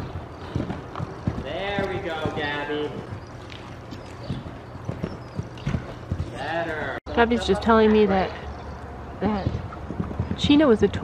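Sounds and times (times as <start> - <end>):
horse hoofbeats on dirt: 0.0 - 7.0, 9.2 - 11.0.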